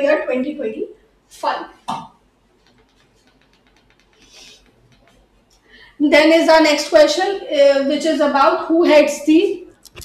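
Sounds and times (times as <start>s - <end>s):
stylus tapping on touchscreen: 2.0s - 5.4s.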